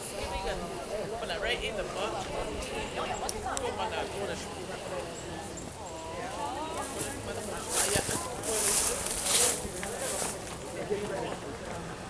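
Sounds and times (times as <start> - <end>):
people talking in background: 0.0 - 12.0.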